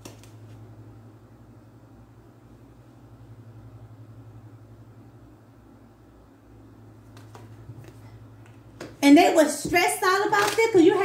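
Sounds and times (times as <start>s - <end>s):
cards flicking and tapping: 0.0s - 0.6s, 7.1s - 9.0s
low steady hum: 0.0s - 11.0s.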